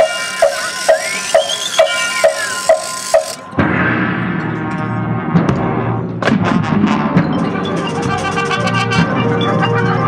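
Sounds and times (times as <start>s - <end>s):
clock-like ticks with knocks: 0.0s - 3.4s
marching band ensemble: 0.0s - 10.0s.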